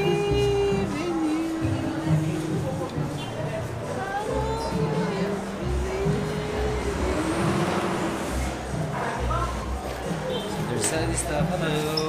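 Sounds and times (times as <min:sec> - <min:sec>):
vehicle passing with rushing hiss: 0:05.4 - 0:10.3.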